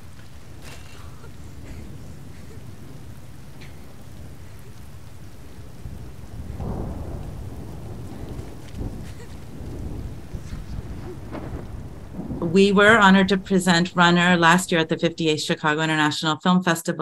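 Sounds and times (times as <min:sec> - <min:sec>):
distant thunder rumbling: 0:00.0 - 0:16.8.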